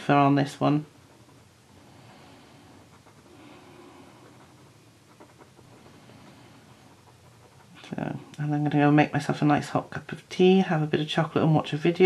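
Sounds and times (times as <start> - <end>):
gel pen scratching on paper: 0.0 - 9.3.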